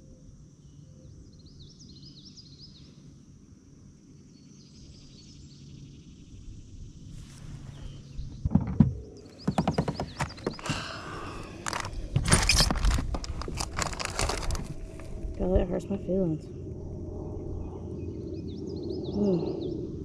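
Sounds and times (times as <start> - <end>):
insect buzz: 0.0 - 20.0
sharp knocks: 8.4 - 10.8.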